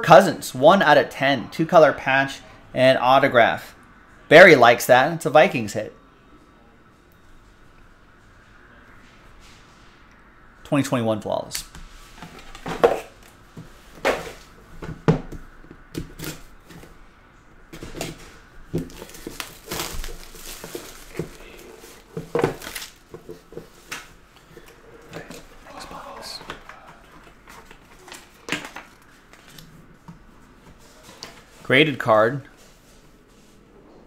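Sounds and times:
cardboard rustling and sliding: 0:17.8 - 0:25.6.

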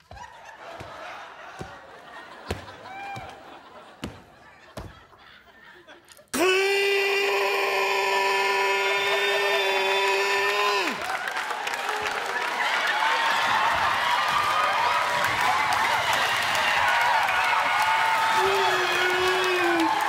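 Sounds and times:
audience applauding and cheering: 0:00.0 - 0:04.5, 0:06.4 - 0:20.0.

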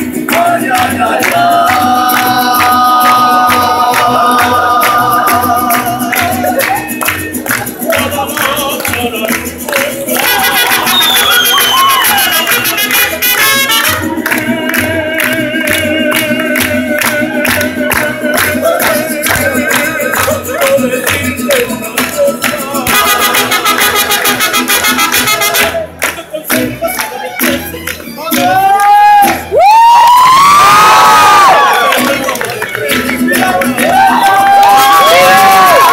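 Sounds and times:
person singing: 0:00.0 - 0:24.4, 0:25.3 - 0:29.6, 0:31.3 - 0:35.9
mariachi band playing: 0:00.0 - 0:35.9
people clapping along: 0:00.0 - 0:35.9.

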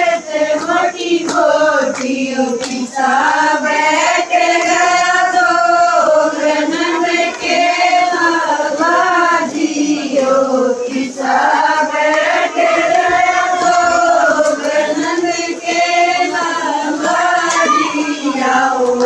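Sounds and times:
women singing together: 0:00.0 - 0:19.0.

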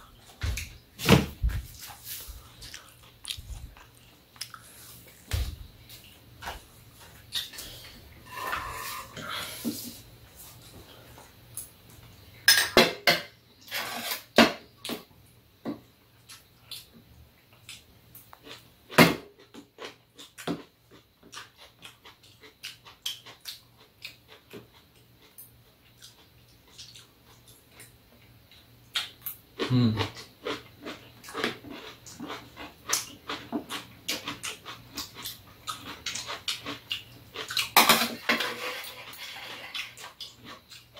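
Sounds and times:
cutlery clinking against bowls: 0:12.5 - 0:13.3.

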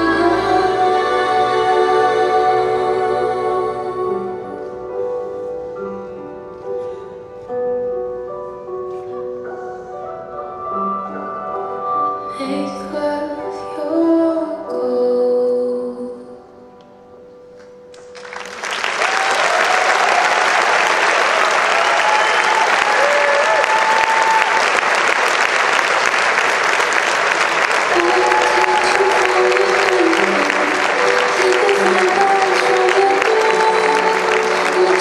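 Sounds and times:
music: 0:00.0 - 0:35.0
audience applause: 0:18.0 - 0:35.0.

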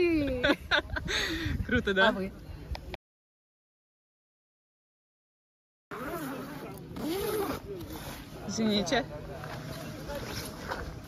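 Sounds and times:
tent zipper being pulled: 0:05.9 - 0:08.8.

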